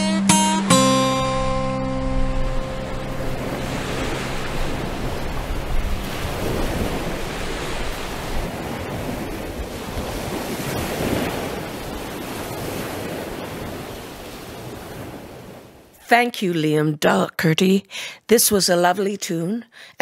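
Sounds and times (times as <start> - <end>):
acoustic guitar chord strummed: 0.0 - 7.9
sea waves on the shore: 0.0 - 16.1
wind on the microphone: 2.2 - 15.8.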